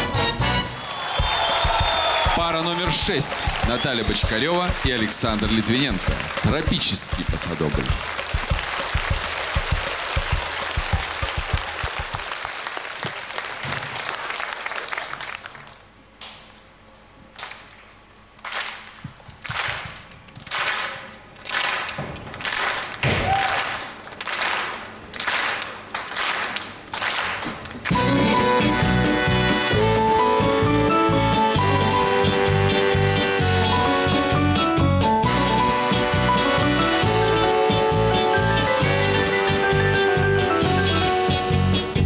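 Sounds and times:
dance music with accordion and strings: 0:00.0 - 0:11.6, 0:27.9 - 0:42.0
audience applause: 0:00.7 - 0:15.8, 0:18.4 - 0:27.9
sharp percussive hits: 0:01.2 - 0:12.2.

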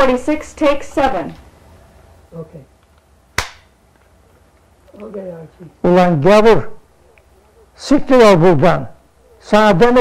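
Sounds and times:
clapperboard snapping shut: 0:03.4 - 0:03.7.

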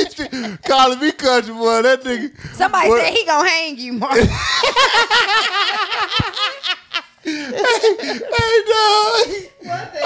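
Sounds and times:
people laughing hard: 0:00.0 - 0:01.2, 0:04.3 - 0:10.0.

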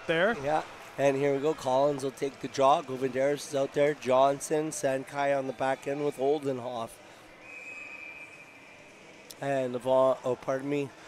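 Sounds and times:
arena background noise: 0:00.0 - 0:11.0
faint high whistle: 0:07.3 - 0:09.3.

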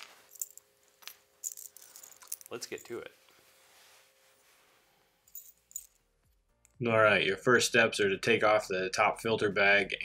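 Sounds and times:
metal hardware jingling: 0:01.4 - 0:03.0.

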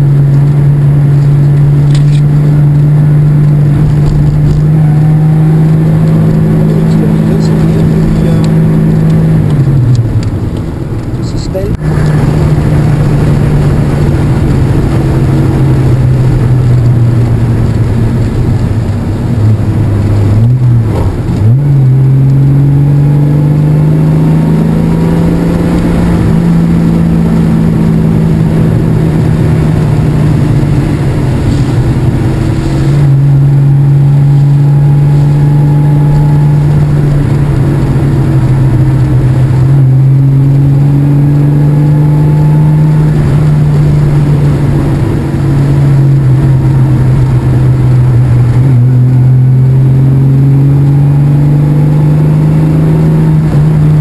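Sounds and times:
car engine under way: 0:00.0 - 0:54.0.

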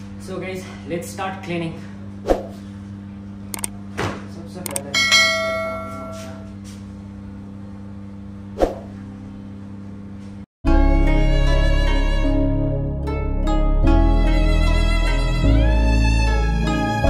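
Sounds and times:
steady low hum: 0:00.0 - 0:10.5
clicks: 0:03.6 - 0:03.8, 0:04.7 - 0:04.9
bright bell-like ding: 0:04.9 - 0:06.4.

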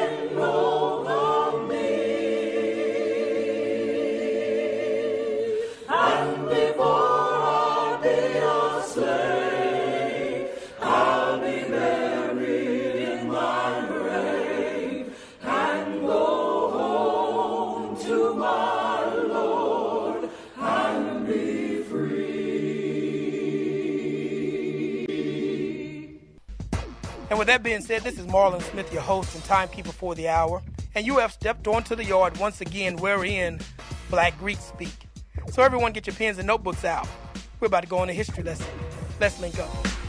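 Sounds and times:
choir singing in harmony: 0:00.0 - 0:26.4, 0:27.3 - 0:29.9.

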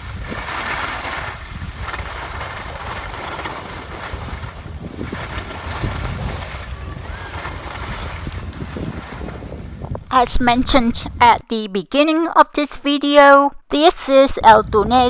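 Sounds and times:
skis sliding over snow: 0:00.0 - 0:10.0
wind buffeting microphone: 0:00.0 - 0:11.4, 0:14.4 - 0:15.0.

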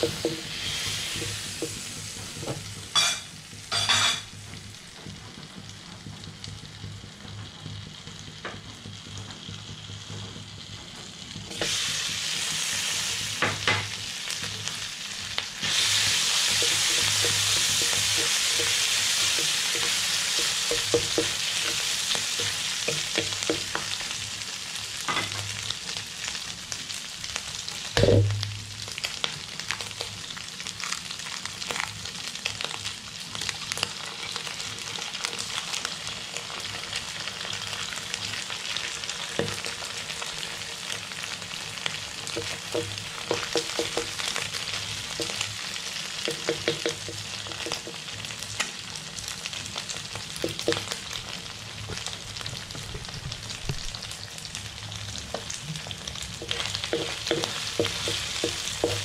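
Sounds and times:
meat sizzling in oil: 0:00.0 - 0:59.0
loud knock: 0:28.0 - 0:28.6.

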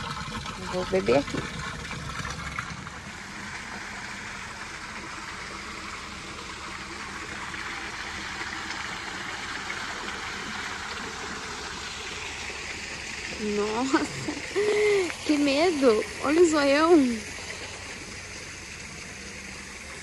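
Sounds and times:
water pouring into a pool: 0:00.0 - 0:20.0.

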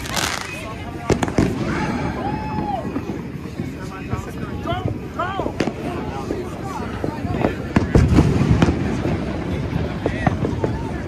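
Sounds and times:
distant fireworks popping and banging: 0:00.0 - 0:11.0
fireworks crackle: 0:00.0 - 0:11.0.

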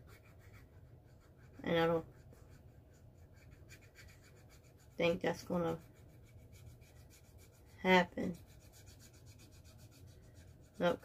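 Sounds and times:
scratch card being scratched: 0:00.0 - 0:11.0.

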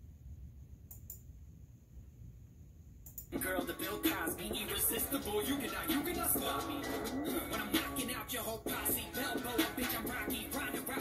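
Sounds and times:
low room rumble: 0:00.0 - 0:11.0
faint quick clicks: 0:00.9 - 0:01.2.

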